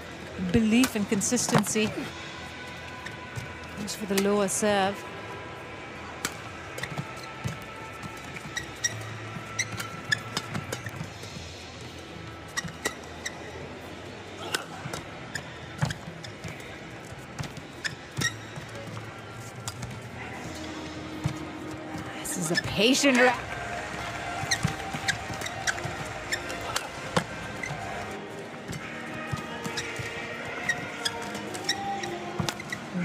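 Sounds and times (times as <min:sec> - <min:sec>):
shoes squeaking on court: 0:00.0 - 0:04.7, 0:06.2 - 0:33.0
arena background noise: 0:00.0 - 0:33.0.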